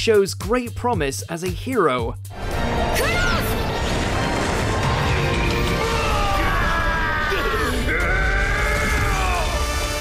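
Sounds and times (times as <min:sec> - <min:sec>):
soundtrack music: 0:02.2 - 0:10.0.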